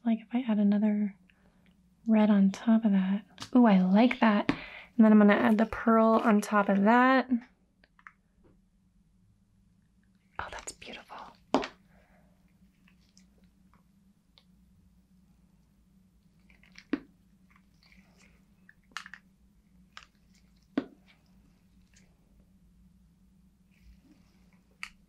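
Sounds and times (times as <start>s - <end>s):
faint steady hum: 0.0s - 25.0s
plastic bottle clicks and crackles: 18.9s - 19.2s.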